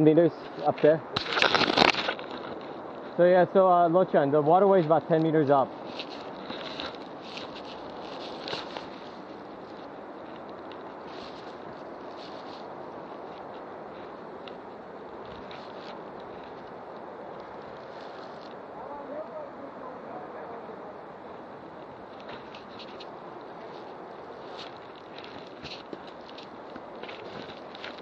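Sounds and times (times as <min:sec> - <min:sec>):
background hiss: 0:00.0 - 0:28.0
rustling leaves: 0:00.0 - 0:28.0
crackly bursts: 0:00.6 - 0:03.2
footsteps on leaf litter: 0:05.7 - 0:10.0, 0:10.7 - 0:14.2, 0:17.7 - 0:18.6, 0:22.2 - 0:28.0.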